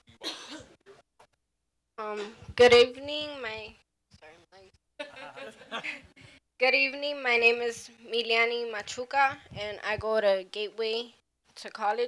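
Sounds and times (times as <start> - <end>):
person clearing throat: 0.1 - 0.8.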